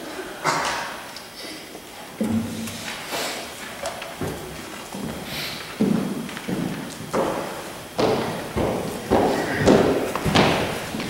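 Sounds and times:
heavy footsteps: 2.2 - 11.0.

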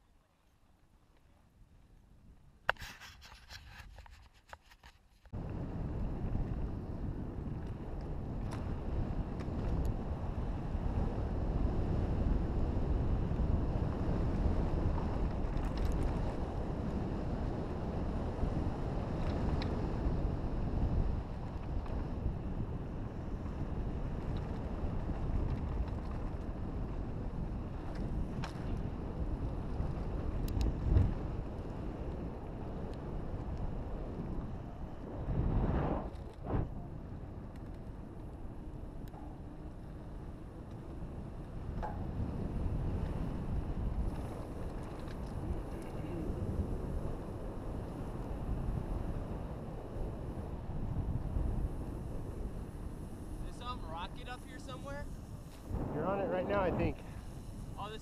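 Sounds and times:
bike tyre rumble on dirt: 5.4 - 58.0
wind buffeting microphone: 5.4 - 58.0
bike clicks and knocks: 37.4 - 46.2
rough rush of noise: 53.1 - 58.0.

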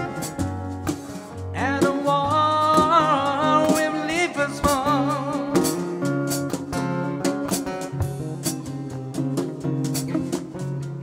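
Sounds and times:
acoustic guitars strumming: 0.0 - 11.0.

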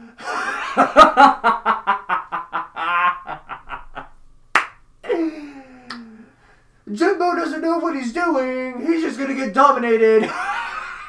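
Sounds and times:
man laughing hard: 0.1 - 4.1, 5.0 - 5.9, 10.2 - 11.0
sharp clap: 4.5 - 4.8, 5.9 - 6.1.

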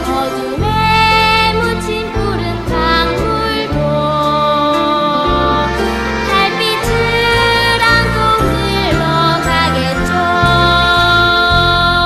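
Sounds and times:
orchestra playing: 0.0 - 12.0.

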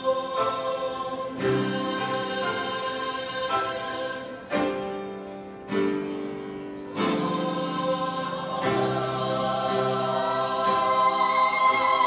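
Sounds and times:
choir of young voices singing: 0.0 - 12.0
piano accompaniment: 0.0 - 12.0.

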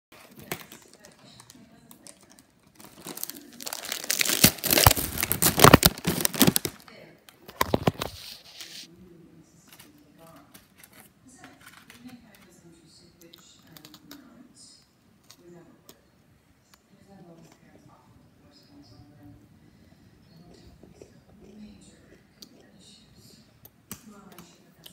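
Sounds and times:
crinkling and rustling at microphone: 0.2 - 8.9.

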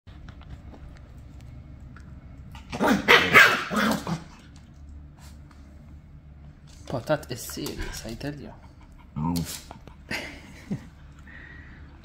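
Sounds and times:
dogs barking: 2.7 - 4.3
dogs growling: 7.8 - 10.6.

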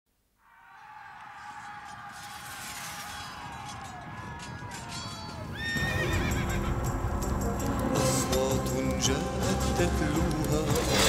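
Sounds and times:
horse whinnying: 4.9 - 6.8
cartoon theme music: 5.8 - 11.0.

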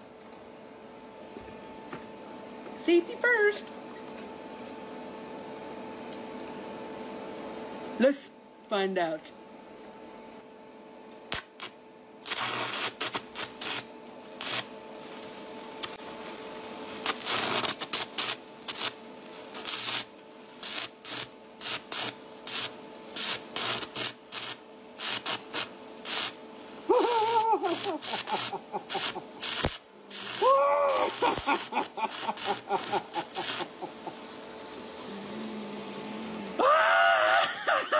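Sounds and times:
steady hum: 0.0 - 37.9
welding arc crackling and sputtering: 11.2 - 37.9
person laughing: 26.9 - 29.5, 30.4 - 34.3, 36.6 - 37.9.

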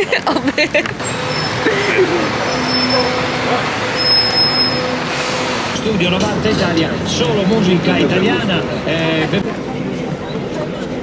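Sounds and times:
diesel coach engine idling: 0.9 - 9.5.

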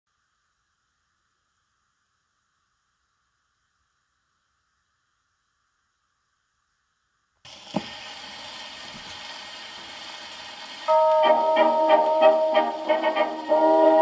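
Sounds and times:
record surface hiss: 0.1 - 14.0
dance orchestra playing: 10.9 - 14.0.

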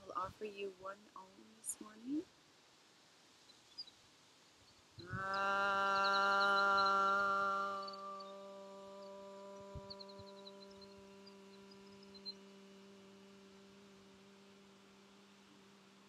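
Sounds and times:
faint bird chirps: 3.4 - 4.0, 4.6 - 13.8
low ringing tone: 5.0 - 15.7.

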